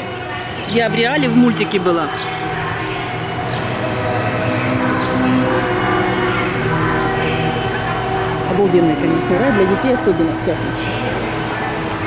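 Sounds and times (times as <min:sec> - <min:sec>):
loud mechanical drone: 0:00.0 - 0:12.0.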